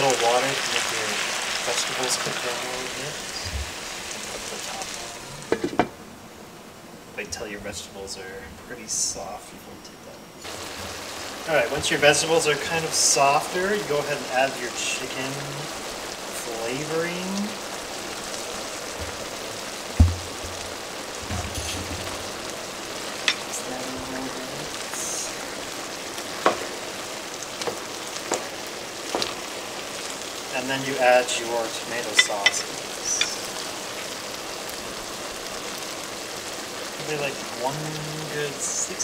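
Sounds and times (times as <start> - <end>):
food sizzling in a pan: 0.0 - 39.0
sharp knock: 20.0 - 20.6.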